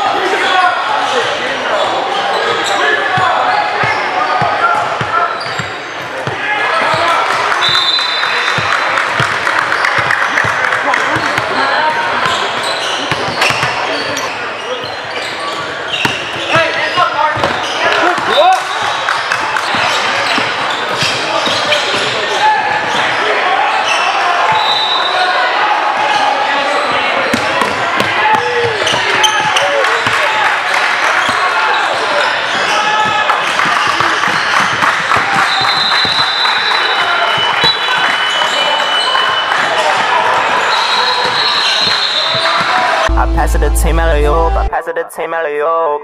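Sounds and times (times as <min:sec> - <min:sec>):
sneaker squeaks: 0:01.0 - 0:10.1, 0:11.1 - 0:25.2, 0:28.4 - 0:30.1, 0:40.6 - 0:43.1
people calling out: 0:43.0 - 0:46.0
music: 0:43.1 - 0:44.8.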